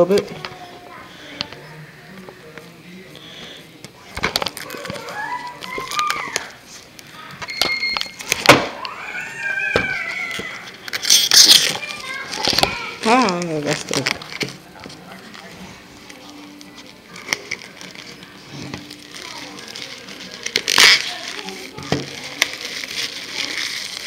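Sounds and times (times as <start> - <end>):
plastic and cardboard crackling: 4.0 - 9.0, 9.6 - 24.0
packaging tearing: 4.2 - 6.6, 9.9 - 24.0.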